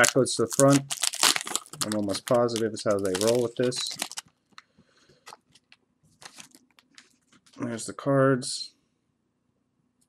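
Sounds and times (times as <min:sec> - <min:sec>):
foil wrapper crinkling: 0:00.0 - 0:04.6, 0:05.2 - 0:06.9.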